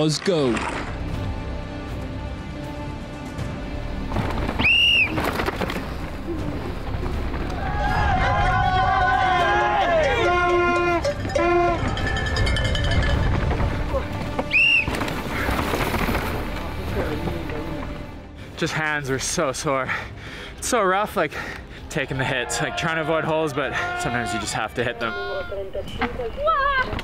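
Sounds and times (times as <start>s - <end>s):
background music: 0.0s - 27.0s
shrill whistles: 4.6s - 5.2s, 14.5s - 15.0s
spectators shouting: 7.4s - 11.8s
mountain bike rattling on dirt trail: 10.1s - 17.4s.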